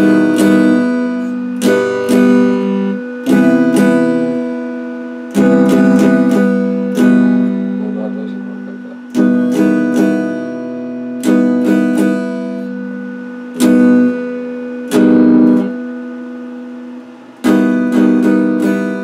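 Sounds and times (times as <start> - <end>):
electric guitar strumming chords: 0.0 - 19.0.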